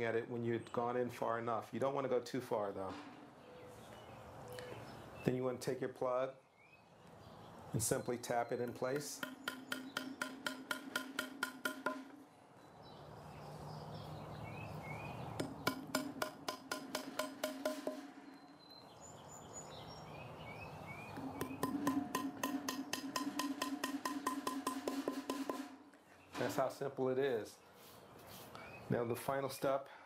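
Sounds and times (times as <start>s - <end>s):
hammer tapping wooden plugs: 8.6s - 12.2s, 15.4s - 18.2s, 21.2s - 25.9s.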